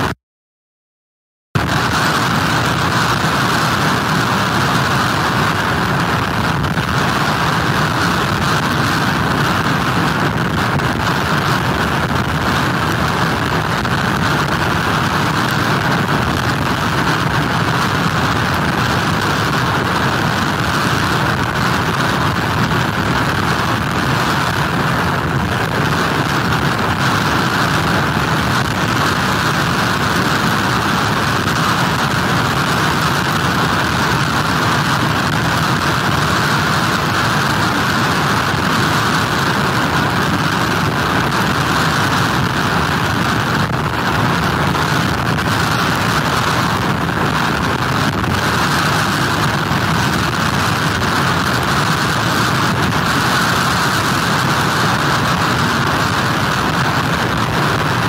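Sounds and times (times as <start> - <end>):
heavy surf pounding a pier: 1.6 - 58.0
hurricane wind: 1.6 - 58.0.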